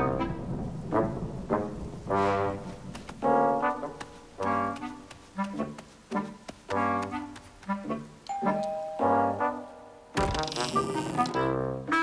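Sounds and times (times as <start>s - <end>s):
cartoon music with brass: 0.9s - 12.0s
ding-dong doorbell chime: 8.3s - 9.2s.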